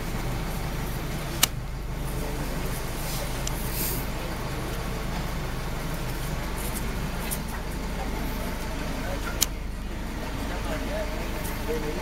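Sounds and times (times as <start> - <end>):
vehicle engine idling: 0.0 - 12.0
murmur of crowd voices: 6.3 - 12.0.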